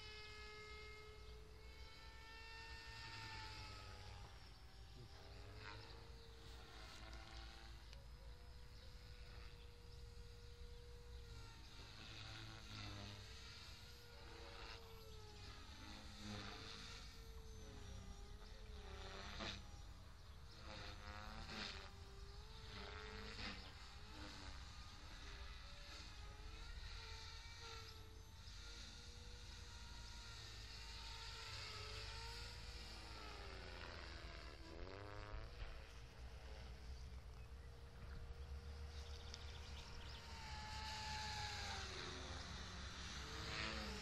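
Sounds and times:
model airplane motor whining: 0.0s - 44.0s.

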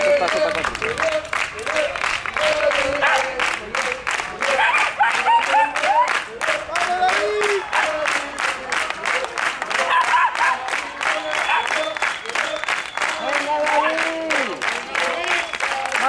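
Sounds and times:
spectators clapping in rhythm: 0.0s - 16.0s
voices calling out: 0.0s - 16.0s.

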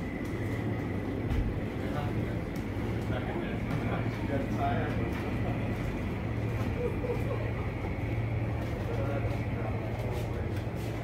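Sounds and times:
low hum: 0.0s - 11.0s
faint voices: 1.4s - 11.0s.

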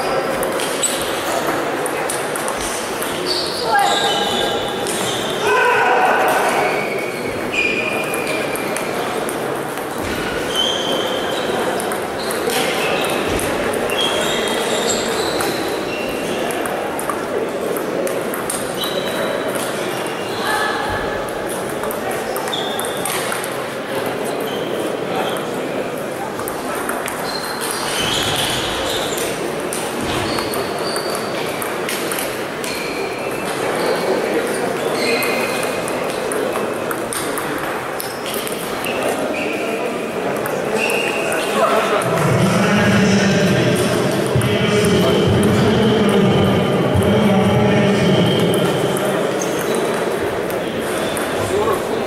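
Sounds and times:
murmur of voices echoing: 0.0s - 52.0s
table tennis balls clicking: 0.4s - 3.3s, 11.7s - 14.0s, 16.4s - 20.1s, 26.4s - 27.9s, 29.2s - 32.8s, 35.2s - 39.0s, 40.3s - 41.5s.

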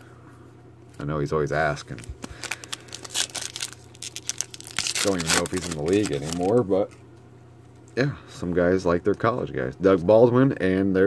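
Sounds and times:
foil wrapper tearing and crinkling: 1.8s - 6.7s.

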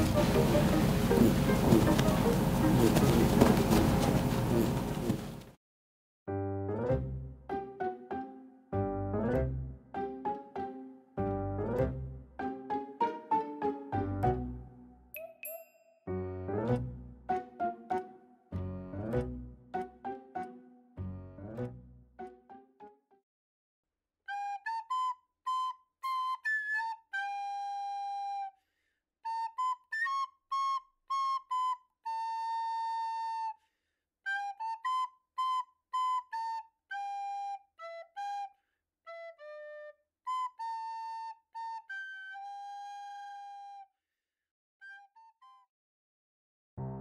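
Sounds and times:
flute-like melody: 0.0s - 3.3s, 6.3s - 23.0s, 24.2s - 28.6s, 29.2s - 33.6s, 34.2s - 44.0s, 44.8s - 45.7s.

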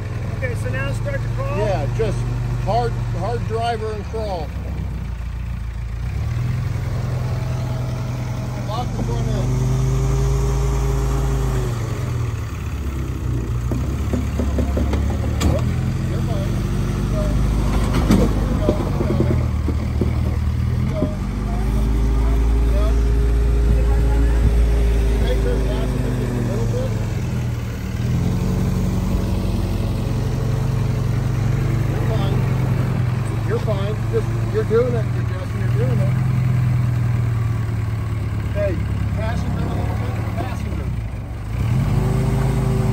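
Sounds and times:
engine revving under load: 0.0s - 42.9s
sharp knocks: 13.6s - 15.7s.

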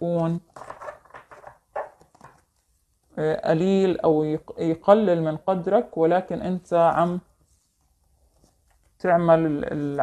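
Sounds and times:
person speaking: 0.0s - 0.5s, 3.2s - 7.2s, 9.0s - 10.0s.

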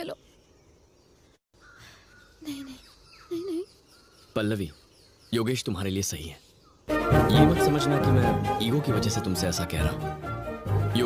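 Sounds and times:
woman speaking: 0.0s - 0.2s, 2.4s - 3.6s.

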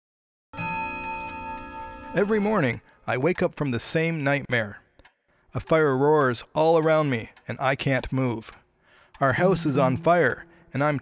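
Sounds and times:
ringing bell-like chime: 0.6s - 2.5s, 9.4s - 11.0s.

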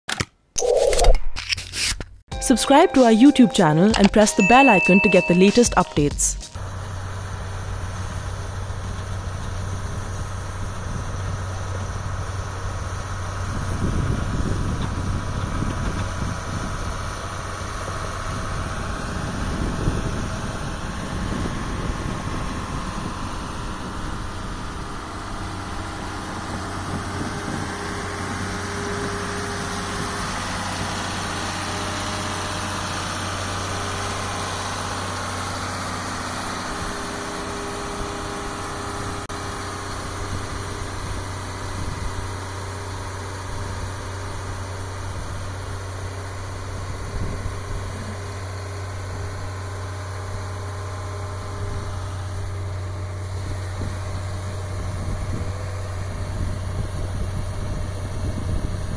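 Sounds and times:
snow blower truck engine drone: 6.6s - 58.9s.

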